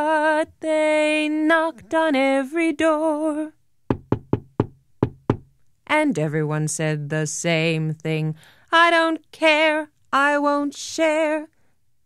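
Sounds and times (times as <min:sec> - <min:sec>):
knuckles knocking on wooden door: 0:03.9 - 0:05.5.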